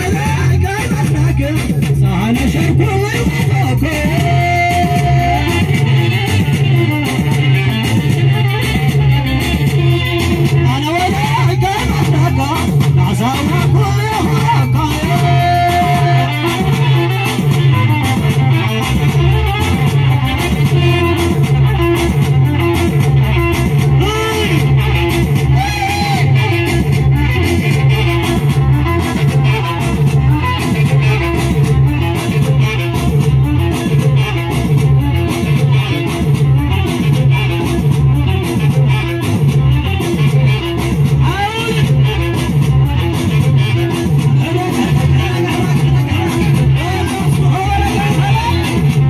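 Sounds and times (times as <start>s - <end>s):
live band music over loudspeakers: 0.0s - 49.0s.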